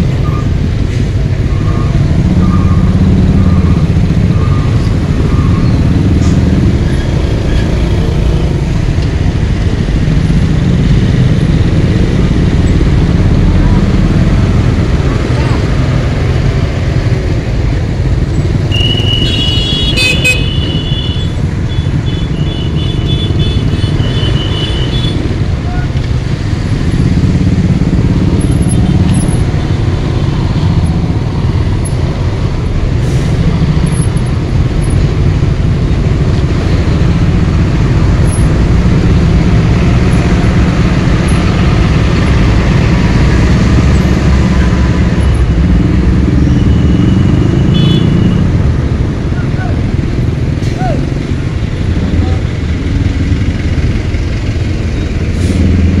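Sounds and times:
traffic engine and road rumble: 0.0s - 56.0s
high-pitched vehicle horn beeps: 18.7s - 25.2s, 46.5s - 48.4s.

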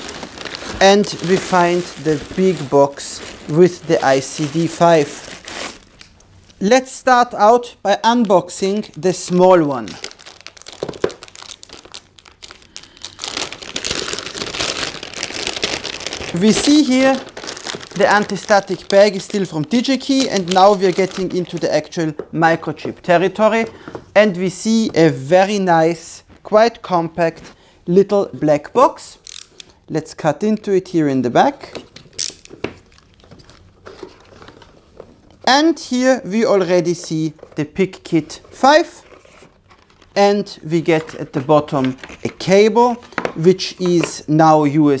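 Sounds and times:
plastic bag crinkling: 0.0s - 6.1s, 8.1s - 22.0s, 38.4s - 40.2s.

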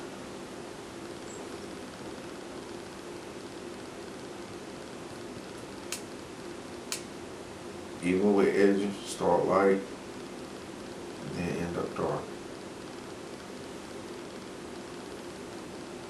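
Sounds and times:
background hiss: 0.0s - 16.0s
faint low hum: 0.0s - 16.0s.

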